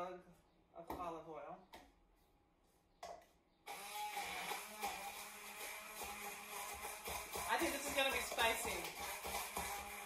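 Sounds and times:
immersion blender motor whirring: 0:03.7 - 0:10.0.

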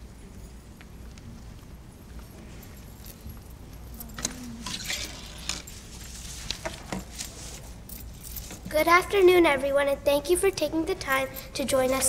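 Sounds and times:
light metallic jingling: 0:02.2 - 0:04.7, 0:07.7 - 0:08.7
woman speaking: 0:08.7 - 0:12.0.

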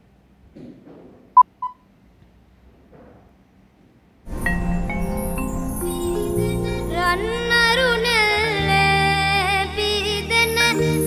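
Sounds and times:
short beeps: 0:01.4 - 0:01.8.

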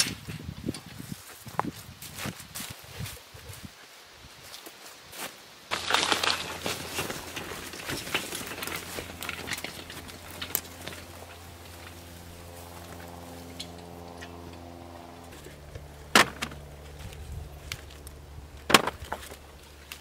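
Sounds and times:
footsteps through dry plants: 0:00.1 - 0:20.0
low motor hum: 0:05.7 - 0:20.0
squash knocking into wooden wagon: 0:16.1 - 0:16.6, 0:18.6 - 0:19.4.

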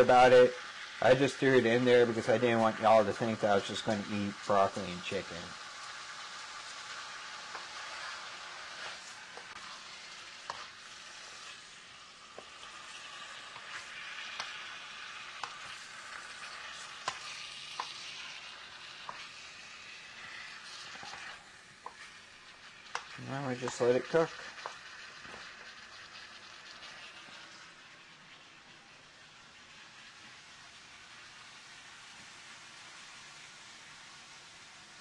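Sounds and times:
food sizzling in a pan: 0:00.0 - 0:35.0
utensil clicking in a pan: 0:06.7 - 0:11.6, 0:12.3 - 0:19.5, 0:22.8 - 0:25.8.

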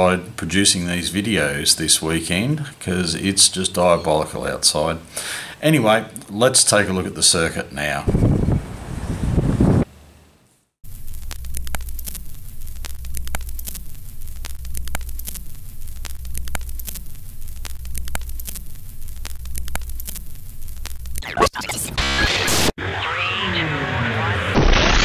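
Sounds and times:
steady low hum: 0:10.8 - 0:21.2.

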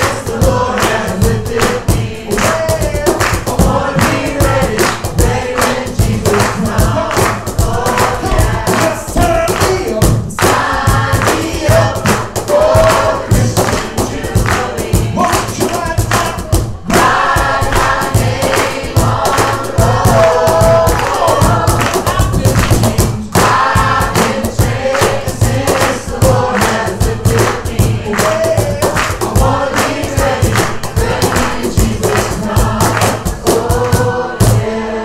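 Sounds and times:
live band strumming and percussion: 0:00.0 - 0:34.7
congregation singing: 0:00.0 - 0:35.0.

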